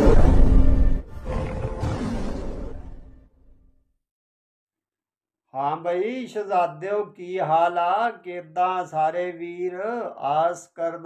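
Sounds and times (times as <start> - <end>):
dramatic music: 0.0 - 1.6
big cat roaring: 1.1 - 3.0.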